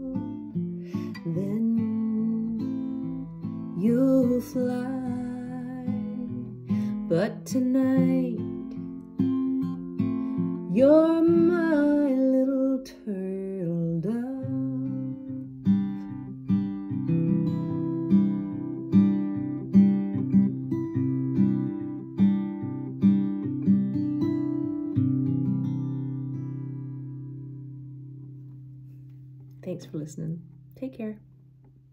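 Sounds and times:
woman singing: 0:00.0 - 0:08.8, 0:10.7 - 0:15.4
acoustic guitar fingerpicking: 0:00.0 - 0:29.8.

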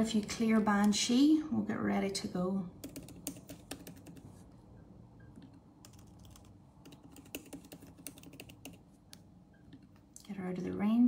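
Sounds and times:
faint laptop keyboard typing: 0:02.8 - 0:04.6, 0:05.2 - 0:10.2.

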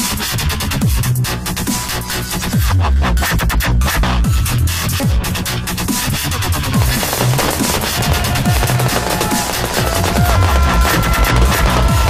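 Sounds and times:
fireworks bangs and crackles: 0:06.7 - 0:12.0.

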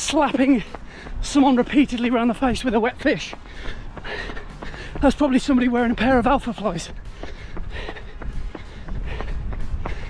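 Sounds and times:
running footsteps on tarmac: 0:00.0 - 0:10.0
steady low rumble: 0:00.0 - 0:10.0.

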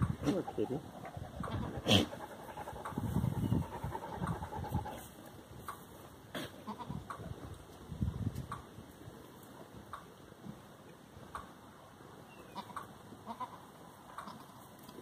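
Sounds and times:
goats bleating softly: 0:01.5 - 0:02.9, 0:06.3 - 0:07.1, 0:12.5 - 0:14.7.

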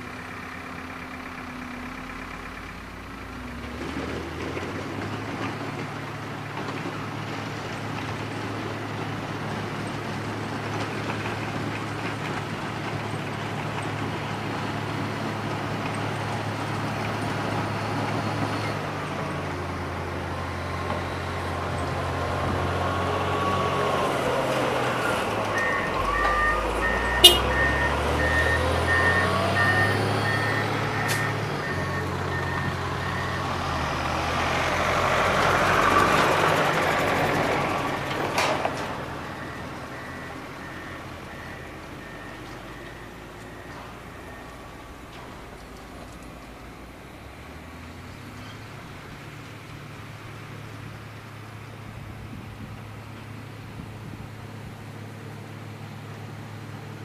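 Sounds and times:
diesel engine passing: 0:00.0 - 0:57.0
truck driving past: 0:00.0 - 0:57.0.

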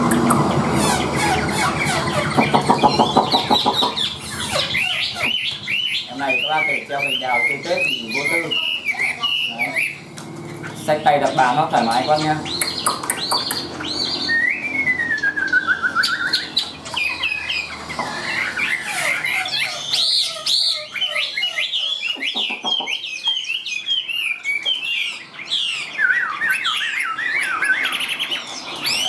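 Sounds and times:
bird singing whistled phrases: 0:00.8 - 0:10.1, 0:10.7 - 0:29.0.

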